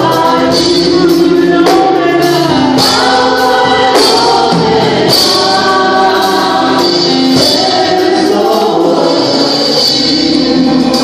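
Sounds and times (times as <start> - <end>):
gospel singing: 0.0 - 11.0
sharp percussion hits: 0.0 - 11.0.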